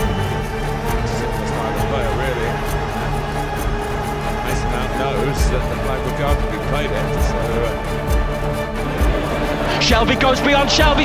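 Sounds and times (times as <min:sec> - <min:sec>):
music with a steady beat: 0:00.0 - 0:11.0.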